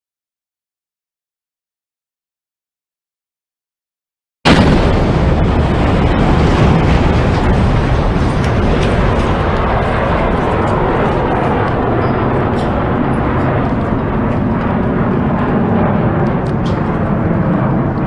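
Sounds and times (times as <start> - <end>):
loud explosion blast: 4.5 - 18.0
noisy rumble: 4.5 - 18.0.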